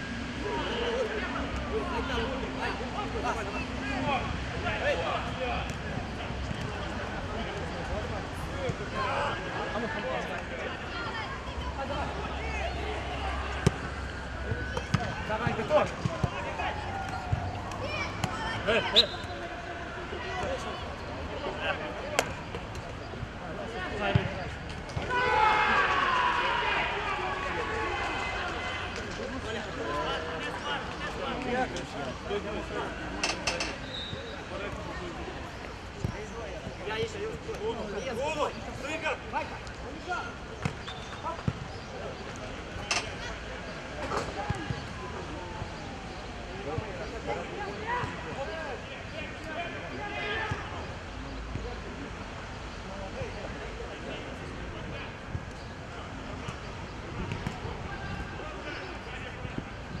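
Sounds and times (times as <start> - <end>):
players shouting: 8.0 - 22.5, 23.5 - 35.4, 46.6 - 51.0, 57.0 - 59.7.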